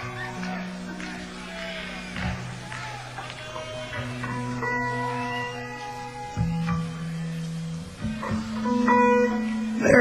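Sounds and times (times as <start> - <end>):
bass guitar notes: 0.0 - 10.0
electric guitar held notes: 0.0 - 10.0.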